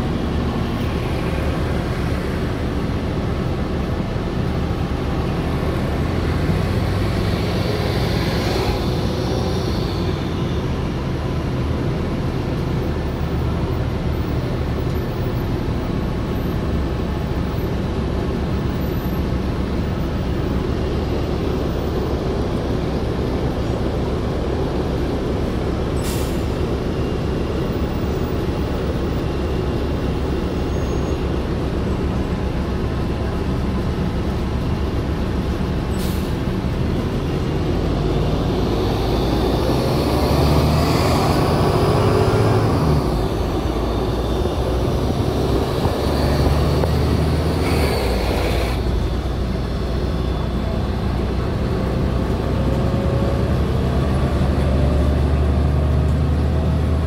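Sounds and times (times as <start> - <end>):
bus engine drone: 0.0 - 57.0.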